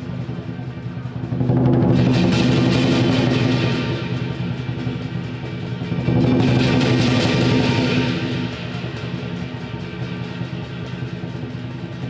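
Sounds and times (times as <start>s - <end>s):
cymbal crashes: 0.0s - 12.0s
percussion ensemble drum cymbals gong: 0.0s - 12.0s.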